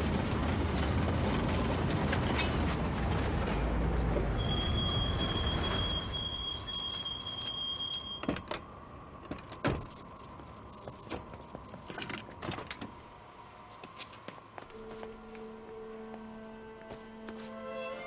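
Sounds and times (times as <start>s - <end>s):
car driving with low rumble: 0.0s - 6.2s.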